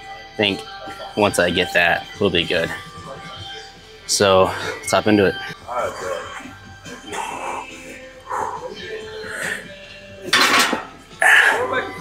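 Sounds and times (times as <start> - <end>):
background music with vocals: 0.0 - 12.0
weight plates clinking: 10.3 - 10.9.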